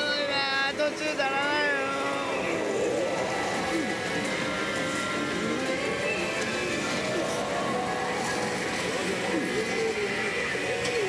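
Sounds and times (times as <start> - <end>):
steady noisy background: 0.0 - 11.0.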